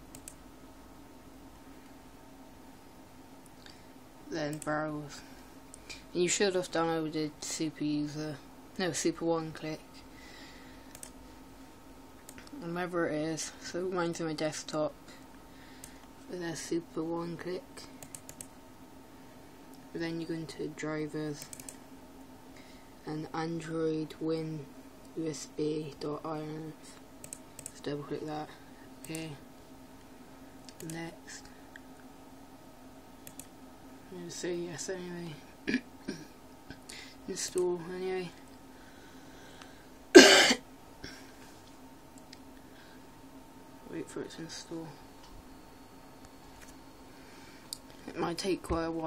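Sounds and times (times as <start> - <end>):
low steady hum: 0.0 - 49.0
computer mouse clicks: 0.1 - 0.4, 10.9 - 11.2, 18.0 - 18.5, 21.4 - 21.8, 27.2 - 27.8, 30.6 - 31.0, 33.2 - 33.5
short loud cough: 40.2 - 40.6.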